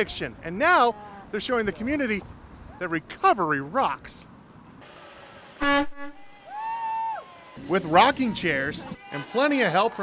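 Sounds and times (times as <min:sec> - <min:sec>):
car horn honking: 0:05.6 - 0:06.3.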